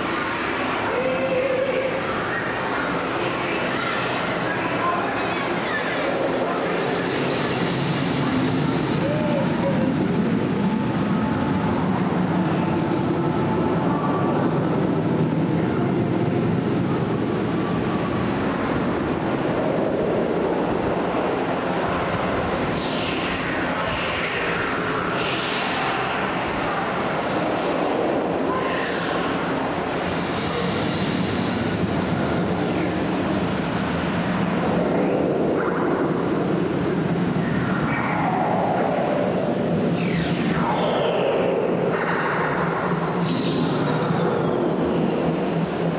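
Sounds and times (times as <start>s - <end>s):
rumbling whoosh with low hum: 0.0s - 45.9s.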